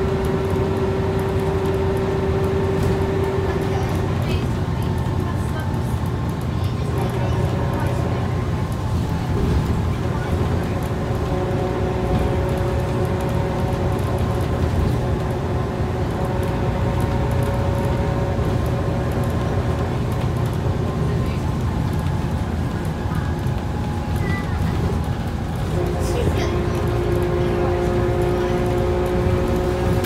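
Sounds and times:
bus engine rumble: 0.0s - 30.0s
road noise: 0.0s - 30.0s.

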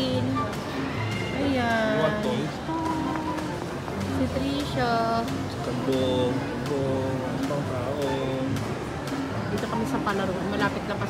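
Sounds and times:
voices: 0.0s - 11.0s.

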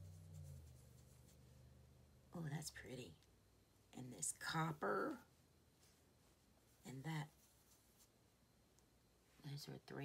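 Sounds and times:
finger rubbing on skin: 0.0s - 1.4s
low room hum: 0.0s - 10.0s.

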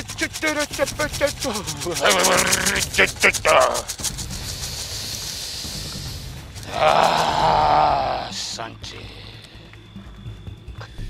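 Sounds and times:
even hiss: 0.0s - 10.2s.

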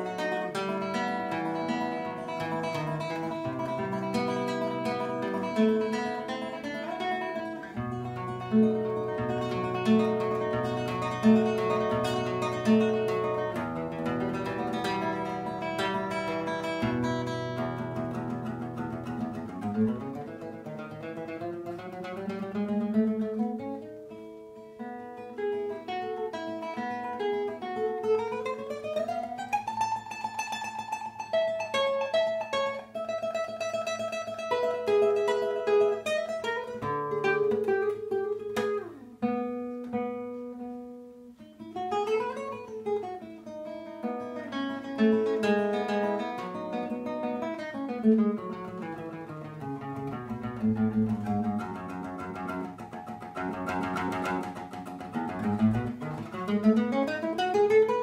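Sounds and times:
nylon-string guitar fingerstyle: 0.0s - 58.0s.

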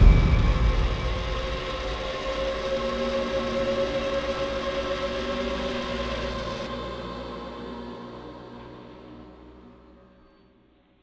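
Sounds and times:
eerie held drone tones: 0.0s - 10.5s.

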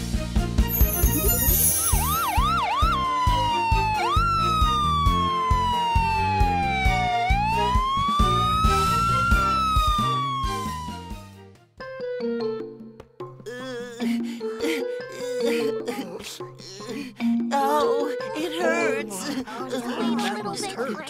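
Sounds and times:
upbeat music with steady beat: 0.7s - 10.8s
cartoon ambulance siren: 1.1s - 11.3s.

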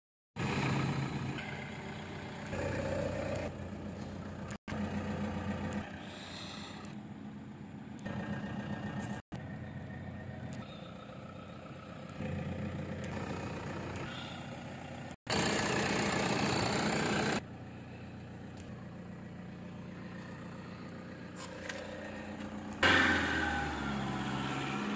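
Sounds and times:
vehicle engine idling: 0.4s - 24.9s.

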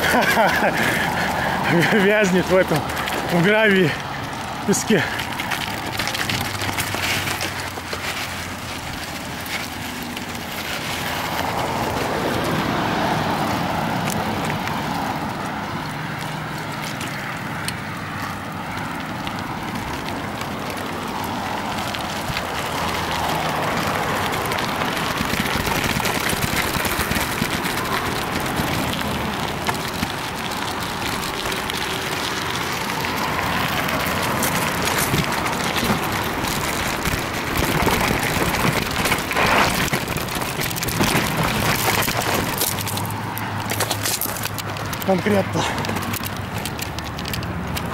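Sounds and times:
bike tyres crunching over gravel: 0.0s - 47.9s.

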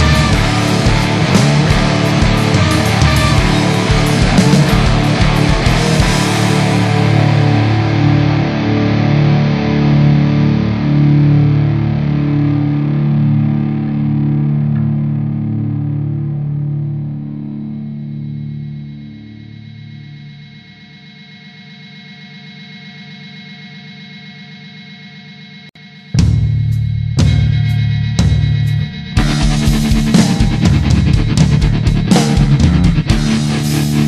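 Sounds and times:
held guitar tone: 0.0s - 20.1s, 26.1s - 34.0s
distorted electric guitar chords: 0.0s - 21.0s, 25.8s - 34.0s.

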